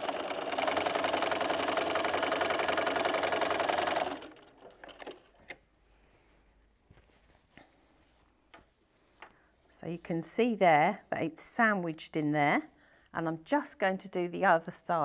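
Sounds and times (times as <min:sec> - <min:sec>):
sewing machine stitching: 0:00.0 - 0:05.6
faint clicks of fabric handling: 0:05.3 - 0:10.2.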